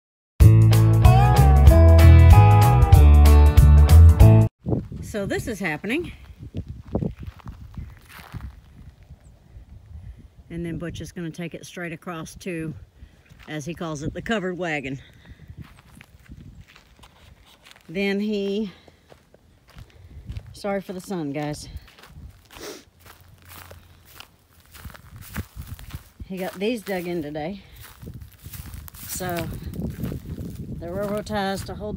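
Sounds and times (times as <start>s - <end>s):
footsteps on dirt and grass: 4.6s - 9.2s, 13.2s - 31.9s.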